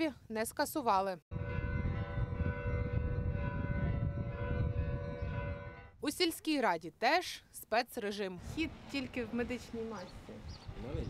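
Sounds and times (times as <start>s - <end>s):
church bells ringing: 1.4s - 5.8s
low rumble: 1.4s - 5.9s.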